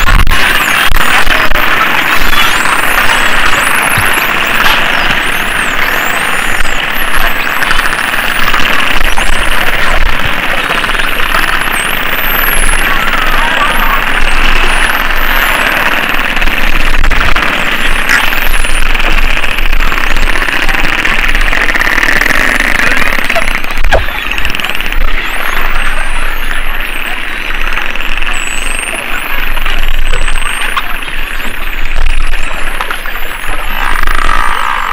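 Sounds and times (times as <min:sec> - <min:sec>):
dolphins whistling underwater: 0:00.0 - 0:34.9
sharp clicks: 0:00.0 - 0:34.9.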